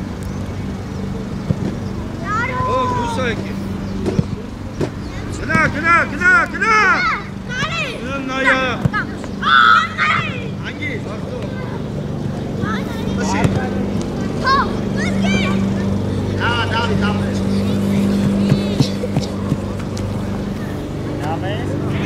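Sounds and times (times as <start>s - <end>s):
young players shouting: 2.2s - 3.7s, 5.1s - 20.8s.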